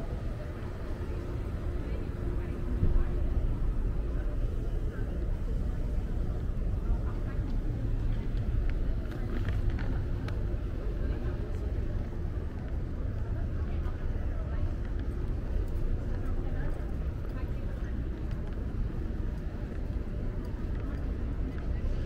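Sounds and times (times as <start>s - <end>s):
indistinct chatter: 0.0s - 22.0s
traffic rumble: 0.0s - 22.0s.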